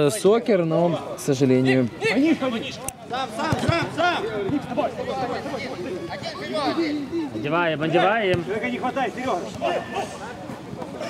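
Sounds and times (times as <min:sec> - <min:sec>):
men talking and calling: 0:00.0 - 0:11.0.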